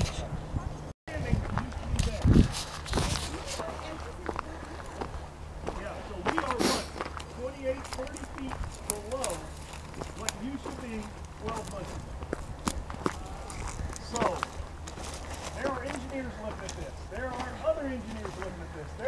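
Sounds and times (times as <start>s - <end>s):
distant voices talking: 0.0s - 19.0s
footsteps crunching on gravel: 1.2s - 19.0s.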